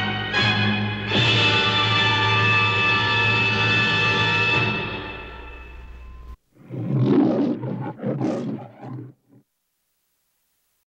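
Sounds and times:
lion roaring: 0:06.6 - 0:09.4.

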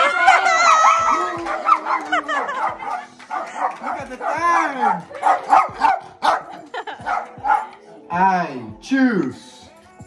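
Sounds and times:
small dog barking: 0:01.5 - 0:07.7.

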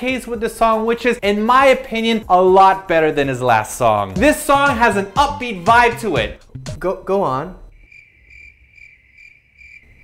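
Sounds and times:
cricket chirping trill: 0:07.5 - 0:10.0.

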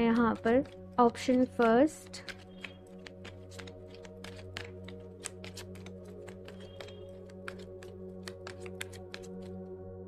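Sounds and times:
cards shuffled by hand: 0:00.0 - 0:09.6
background music: 0:00.0 - 0:10.0.

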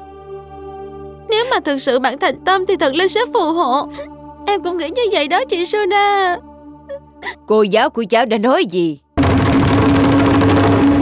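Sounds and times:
fast drum roll: 0:09.2 - 0:11.0.

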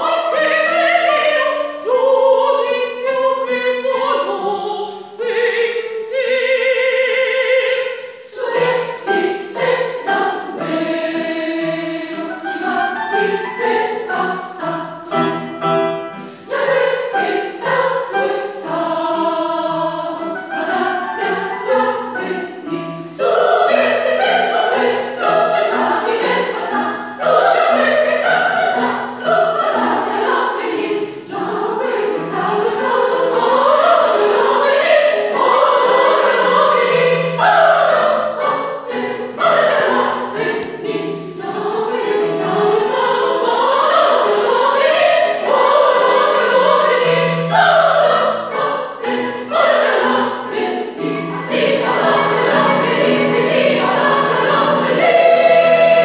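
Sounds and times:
mixed choir singing: 0:00.0 - 0:56.0
digital piano: 0:08.8 - 0:56.0.

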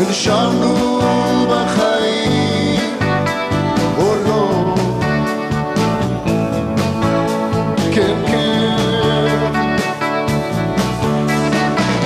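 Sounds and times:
electric guitars and bass: 0:00.0 - 0:12.0
steady drum beat: 0:00.0 - 0:12.0.

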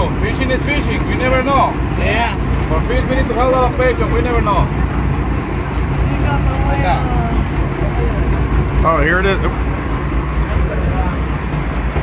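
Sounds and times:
boat engine droning: 0:00.0 - 0:12.0.

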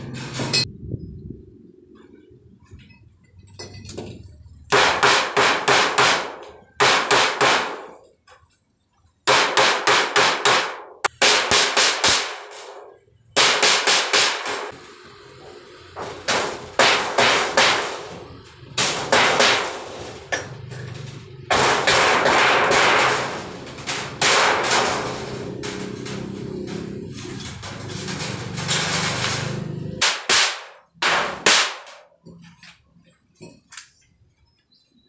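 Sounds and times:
hammer beating metal sheet: 0:00.0 - 0:00.7, 0:04.0 - 0:08.0, 0:09.3 - 0:15.1, 0:15.9 - 0:32.1.

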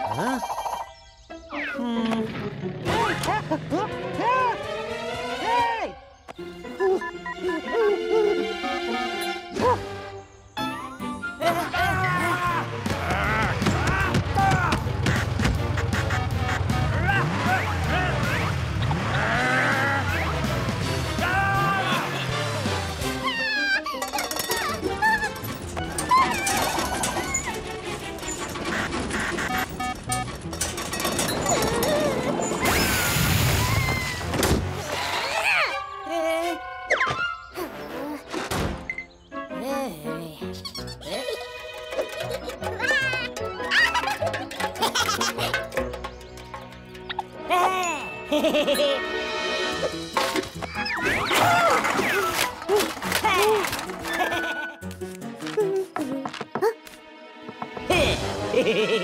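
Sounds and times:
cartoon background music: 0:00.0 - 0:59.0
cartoon characters whimpering: 0:06.7 - 0:09.8, 0:23.2 - 0:25.4, 0:35.3 - 0:38.4.

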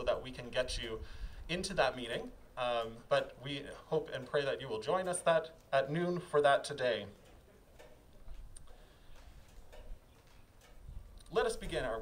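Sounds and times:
soft scattered clicks: 0:01.8 - 0:12.0.

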